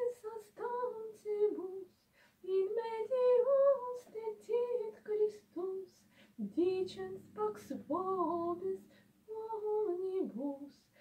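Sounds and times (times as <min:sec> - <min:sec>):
woman singing chant unaccompanied: 0:00.0 - 0:11.0.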